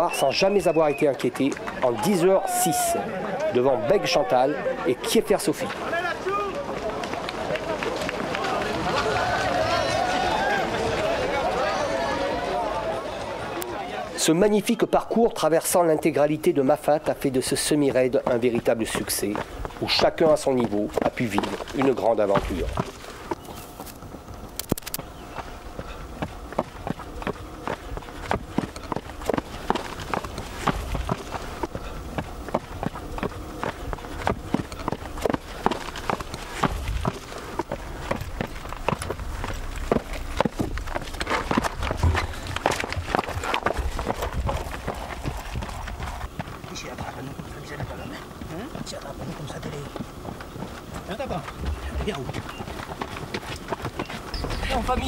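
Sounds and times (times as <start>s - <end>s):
footsteps on rocky path: 16.6s - 55.0s
voices in background: 46.6s - 52.8s.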